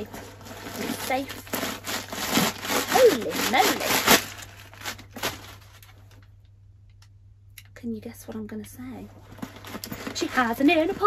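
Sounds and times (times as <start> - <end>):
paper rustling: 0.0 - 6.1
faint handling sounds: 9.0 - 11.0.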